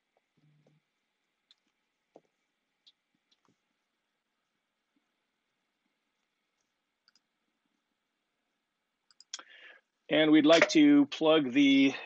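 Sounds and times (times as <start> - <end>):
faint clicks: 0.1 - 3.6, 6.1 - 7.3, 9.0 - 9.6.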